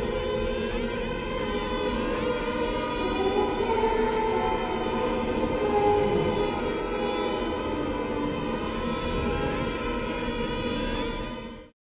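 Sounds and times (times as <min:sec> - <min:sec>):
choir holding sustained notes: 0:00.0 - 0:11.7.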